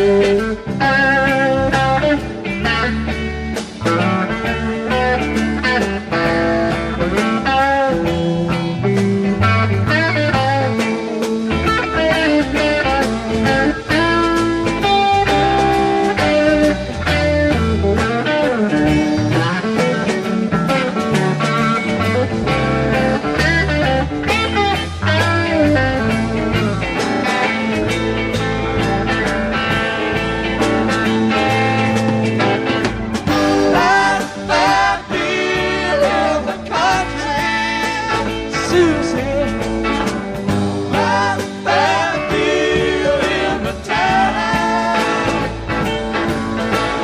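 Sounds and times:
lead electric guitar solo: 0:00.0 - 0:47.0
rock band playing live: 0:00.0 - 0:47.0.

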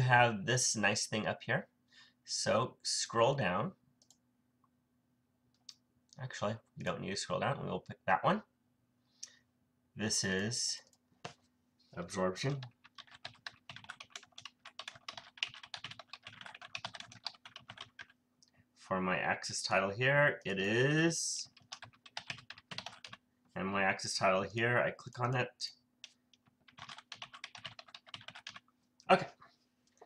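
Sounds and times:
computer keyboard typing: 0:12.4 - 0:18.2, 0:21.4 - 0:23.2, 0:26.0 - 0:28.7.

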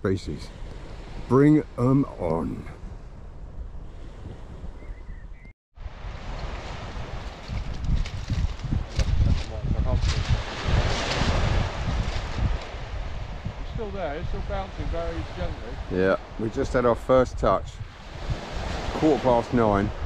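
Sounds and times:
surf on shingle beach: 0:00.1 - 0:03.0, 0:05.8 - 0:20.0
wind buffeting microphone: 0:00.6 - 0:20.0.

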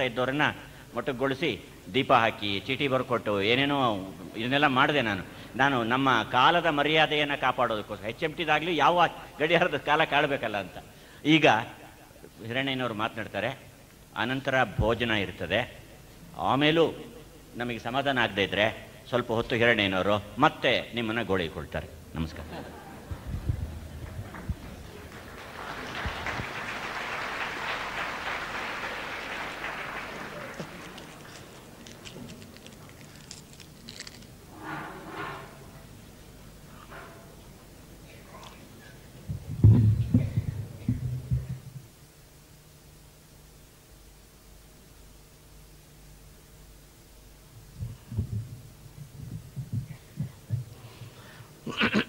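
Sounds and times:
audience clapping: 0:22.9 - 0:33.3
soft low thumps: 0:47.7 - 0:50.8.

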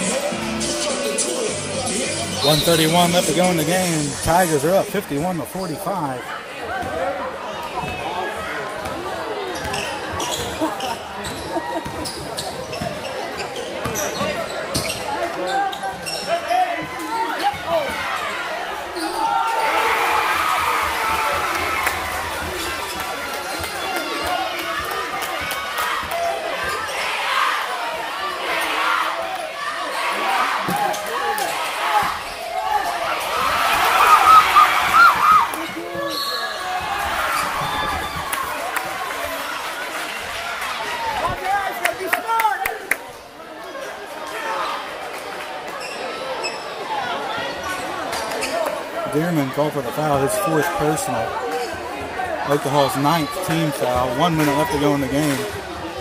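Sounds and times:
people calling out: 0:33.7 - 0:36.5.

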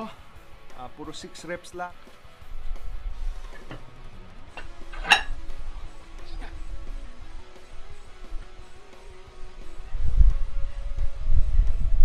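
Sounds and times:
background music: 0:00.0 - 0:12.0
metallic clink of barbell: 0:04.6 - 0:05.4.

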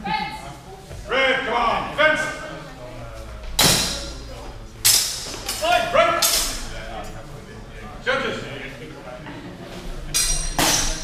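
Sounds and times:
steel swords clashing: 0:04.8 - 0:06.7, 0:10.1 - 0:11.0.

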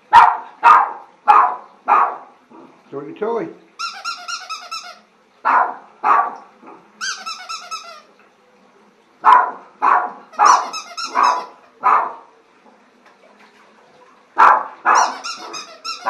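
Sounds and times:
small dog barking: 0:00.1 - 0:02.7, 0:05.4 - 0:06.8, 0:09.2 - 0:12.3, 0:14.4 - 0:16.0
rapid high-pitched squeaks: 0:07.0 - 0:08.1, 0:15.0 - 0:16.0.

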